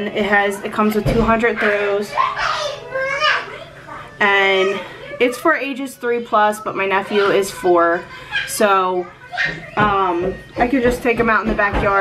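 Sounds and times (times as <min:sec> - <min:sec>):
baby yelling: 0:02.1 - 0:03.7.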